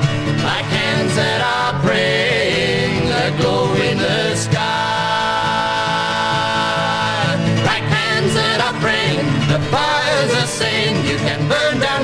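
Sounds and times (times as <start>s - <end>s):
acoustic guitar: 0.0s - 12.0s
voices singing folk song: 0.0s - 12.0s.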